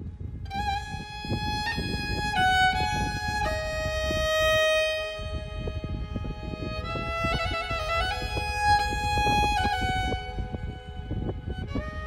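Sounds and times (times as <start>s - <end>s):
fiddle holding long note: 0.5s - 12.0s.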